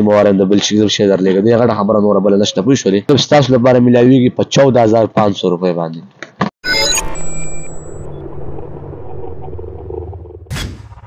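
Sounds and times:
low electronic drone: 6.7s - 11.0s.

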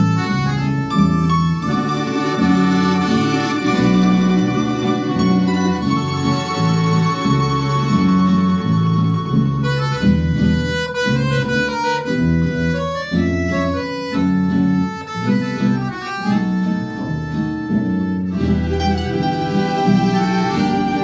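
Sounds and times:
accordion melody: 0.0s - 21.0s
bass line: 0.0s - 21.0s
plucked guitars: 0.0s - 21.0s.

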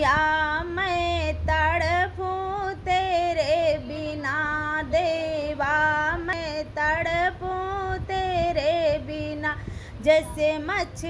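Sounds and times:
woman singing devotional song: 0.0s - 11.0s.

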